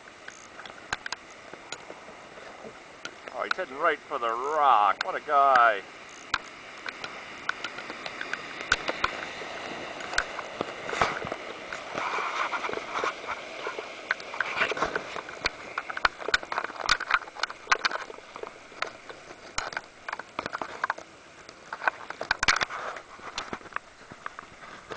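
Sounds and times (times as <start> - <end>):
whitewater rushing: 0.0 - 24.9
sharp water splashes: 2.9 - 24.6.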